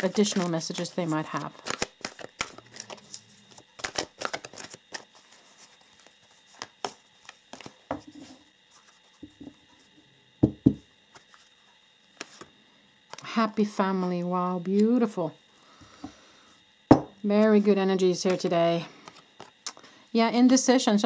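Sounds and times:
cards being shuffled: 0.0 - 9.4, 12.2 - 12.5.

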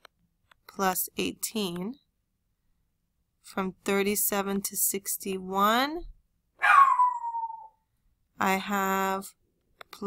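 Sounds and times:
pet's high falling call: 6.6 - 7.8.

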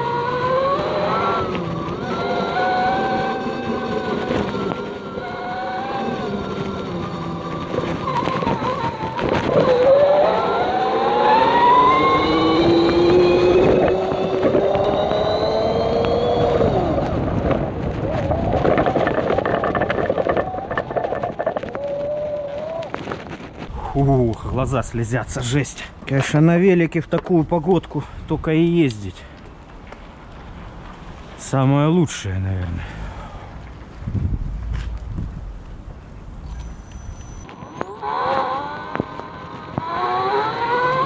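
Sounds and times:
electric motor whining: 0.0 - 22.2, 37.5 - 41.0.

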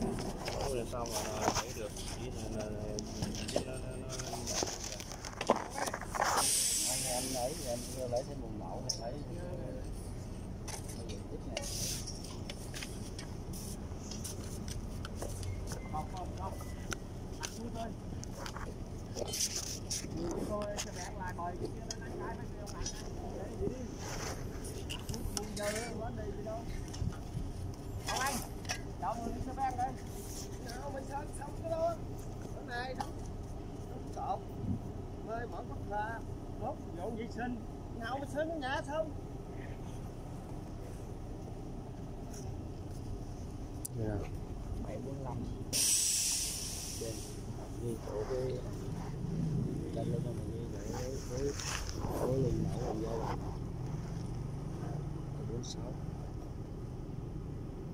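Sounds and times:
paper rustling: 0.1 - 6.6
faint voices: 46.9 - 53.7.

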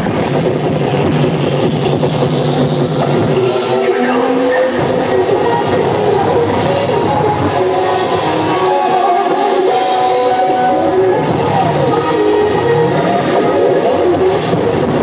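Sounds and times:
cheerdance music over sound system: 0.0 - 15.0
crowd noise: 0.0 - 15.0
rising sweep: 0.0 - 15.0.

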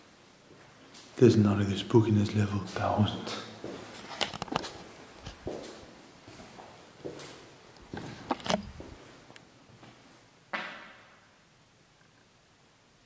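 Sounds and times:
footsteps on gritty floor: 2.7 - 9.2.

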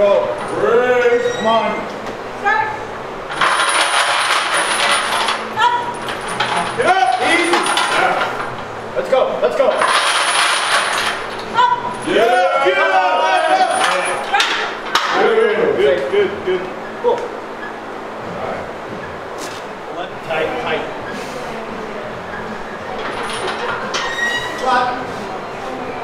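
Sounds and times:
chains clinking and rattling: 3.3 - 8.5, 9.7 - 12.2, 13.4 - 14.4, 22.9 - 24.4
men calling out: 11.5 - 16.4.

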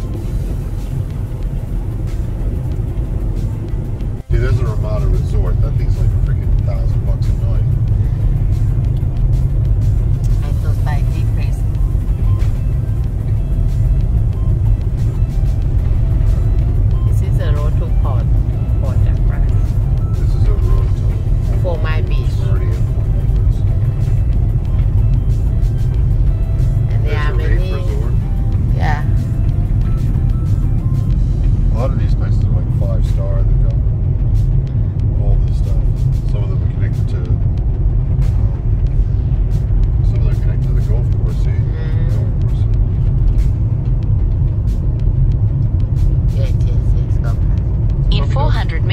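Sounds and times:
music playing: 0.0 - 48.9
road and engine rumble: 0.0 - 48.9.

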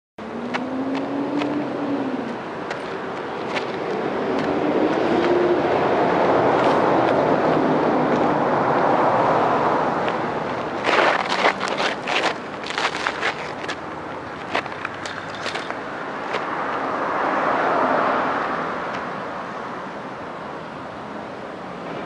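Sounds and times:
shoes scuffing on gravel: 10.1 - 16.5.

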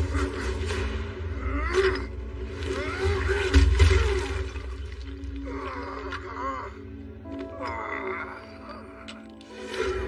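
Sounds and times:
dramatic orchestral score: 0.0 - 10.0.

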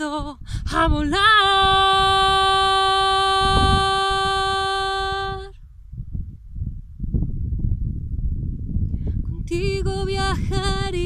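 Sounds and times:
woman singing a long note: 0.0 - 5.6, 9.4 - 11.0
wind buffeting microphone: 0.0 - 11.0.

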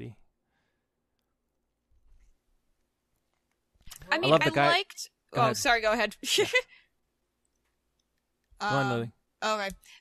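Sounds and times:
voices: 3.9 - 6.6, 8.6 - 9.8.

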